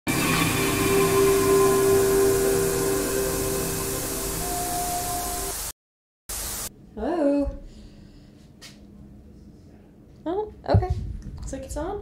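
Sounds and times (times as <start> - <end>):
static hiss: 0.1 - 5.7, 6.3 - 6.7
steady electronic tones: 0.1 - 5.7.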